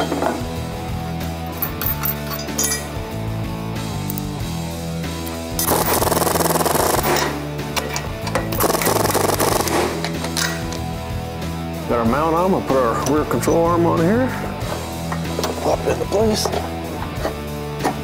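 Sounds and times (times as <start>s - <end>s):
background music with bass line: 0.0s - 18.0s.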